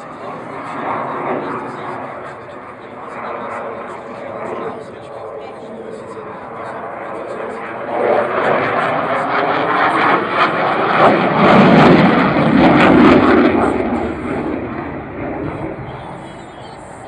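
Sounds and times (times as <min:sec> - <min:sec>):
jet fighter flying overhead: 0:00.0 - 0:17.0.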